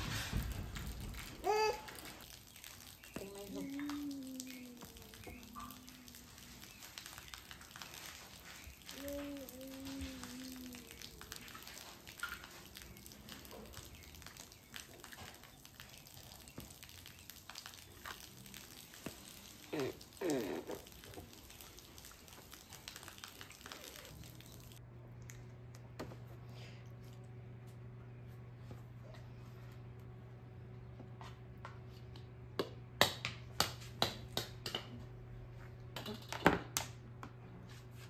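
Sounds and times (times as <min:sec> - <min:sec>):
toddler vocal sounds: 0:01.2 - 0:02.2, 0:03.2 - 0:06.3, 0:08.8 - 0:11.5.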